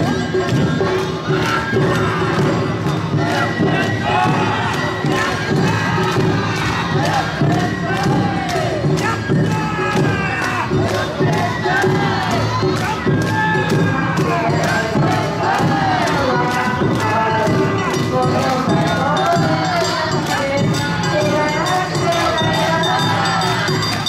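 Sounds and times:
dancers shouting chanted calls: 0.0 - 24.0
festival drums and bell: 0.0 - 24.0.

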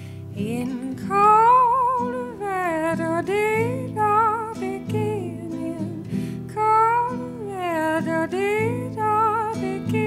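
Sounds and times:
plucked guitar: 0.0 - 10.0
woman singing with vibrato: 0.4 - 10.0.

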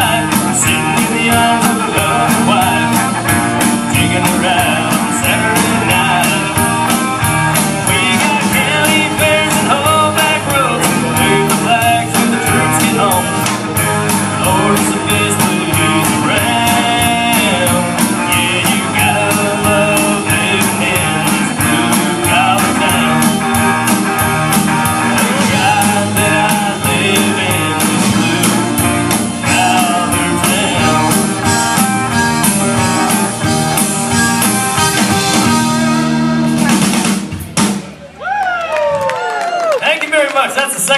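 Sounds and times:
person singing: 0.0 - 7.0, 7.8 - 24.2, 24.8 - 32.0
live rock band: 0.0 - 39.4.

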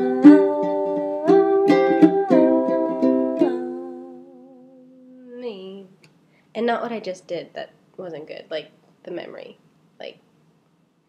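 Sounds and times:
ukulele strumming chords: 0.0 - 5.4
person humming a held note: 0.0 - 5.6.

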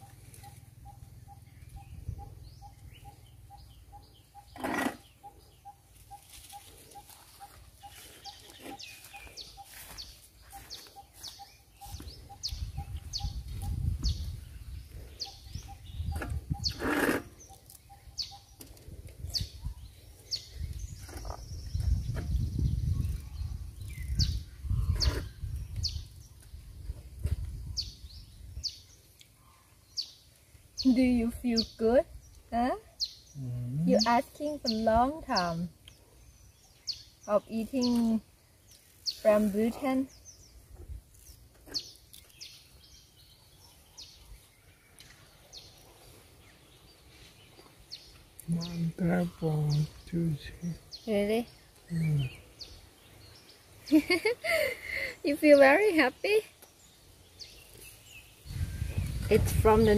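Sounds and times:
birds chirping: 0.0 - 59.9.

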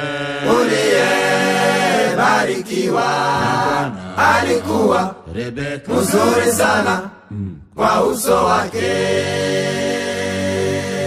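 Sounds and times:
choir singing gospel song: 0.0 - 7.2, 7.8 - 11.0.

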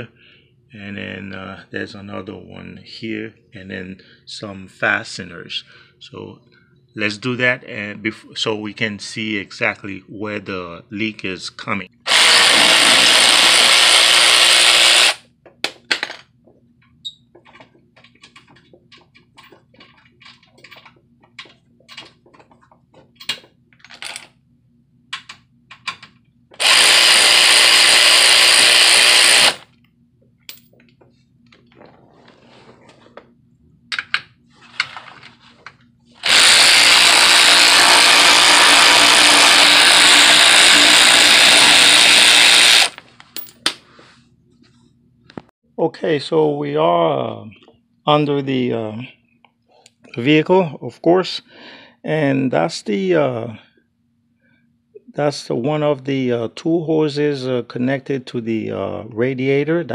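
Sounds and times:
power ratchet spinning bolts: 12.1 - 15.2, 26.6 - 29.6, 36.2 - 43.0.

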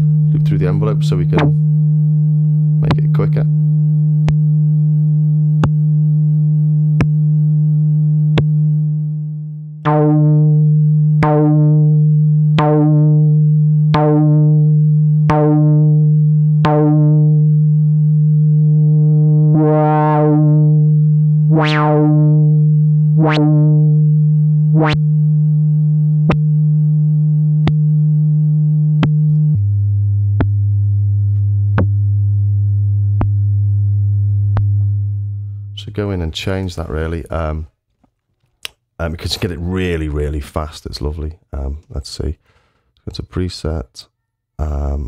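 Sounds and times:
synthesizer low note filter sweeps: 0.0 - 37.6.

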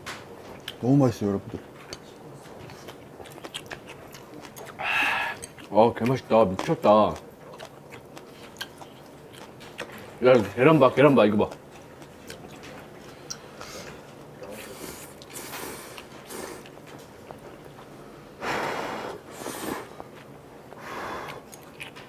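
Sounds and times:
chewing: 1.5 - 17.9, 19.3 - 22.0.

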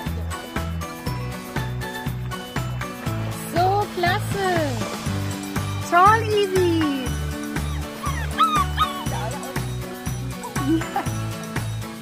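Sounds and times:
background music with steady beat: 0.0 - 12.0
dog yipping and whining: 7.6 - 9.2.

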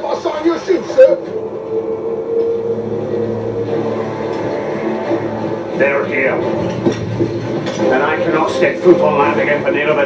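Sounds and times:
deep swelling note: 1.1 - 9.7
low orchestral chord: 1.1 - 9.8.

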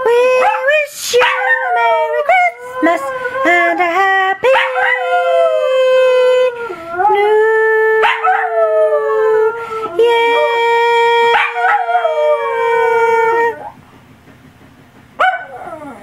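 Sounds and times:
dog howling: 0.1 - 13.8, 15.2 - 16.0
dog yelping howl: 0.2 - 3.8, 4.5 - 7.3, 7.9 - 13.8, 15.2 - 16.0.

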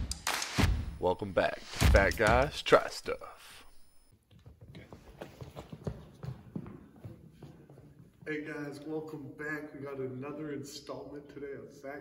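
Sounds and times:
footsteps on hardwood floor: 4.1 - 8.3.

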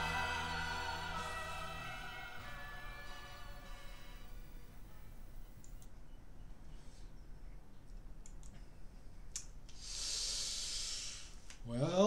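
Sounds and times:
computer mouse clicks: 5.6 - 6.0, 8.2 - 8.6
breathy hiss: 9.7 - 11.6.

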